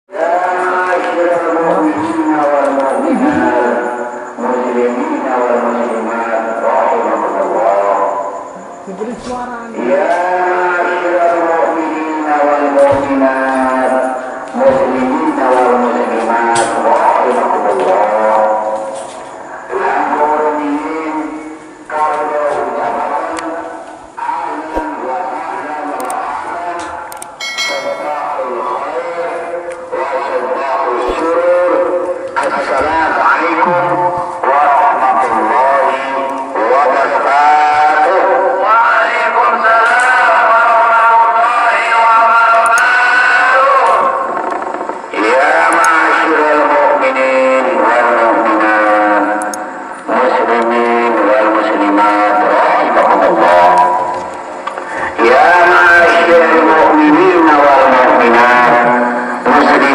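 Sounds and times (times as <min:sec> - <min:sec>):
person chanting through loudspeaker: 0:00.1 - 0:59.9.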